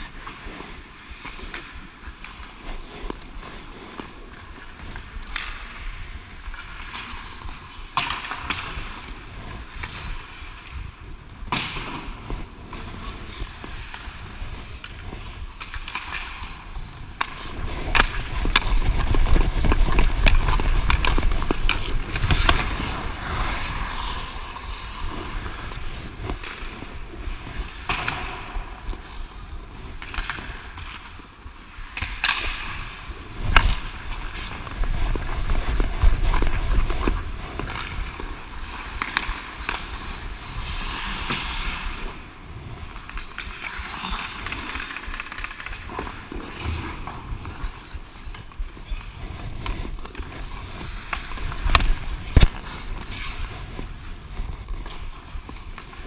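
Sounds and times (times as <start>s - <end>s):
hockey stick and puck clacks: 0.0s - 56.0s
skate blades scraping ice: 0.0s - 56.0s
wind rumble on microphone: 1.8s - 56.0s.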